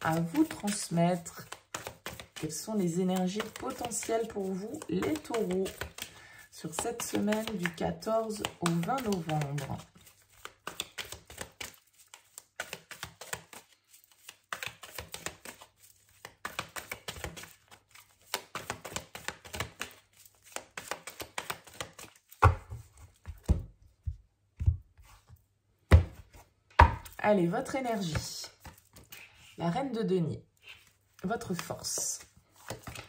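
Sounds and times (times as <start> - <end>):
cards being shuffled: 0.0 - 23.7, 26.1 - 29.6, 30.6 - 33.0.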